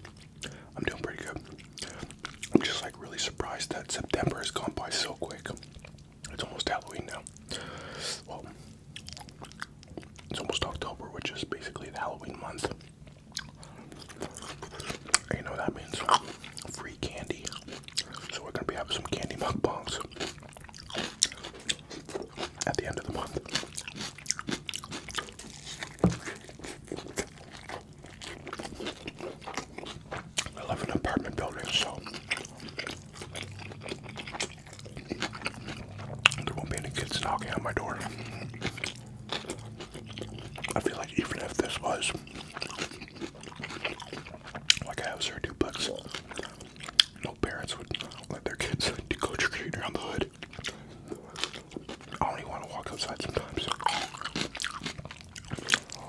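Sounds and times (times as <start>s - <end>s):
chewing and biting burger: 0.0s - 56.0s.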